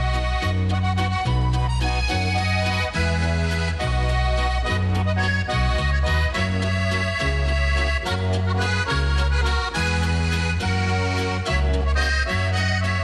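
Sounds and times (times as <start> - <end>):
accordion folk music: 0.0 - 13.0.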